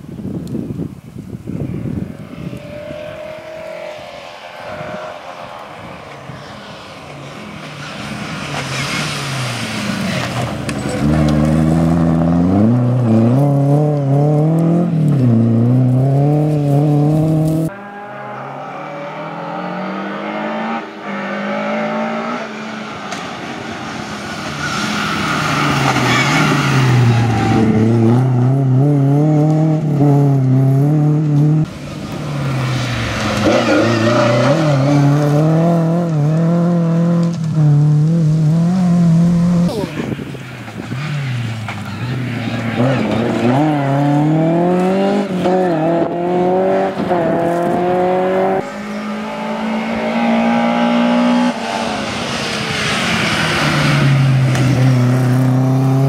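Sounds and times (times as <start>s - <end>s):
rally car engine revving hard: 9.4s - 22.8s, 25.3s - 31.7s, 32.4s - 39.9s, 42.5s - 56.0s.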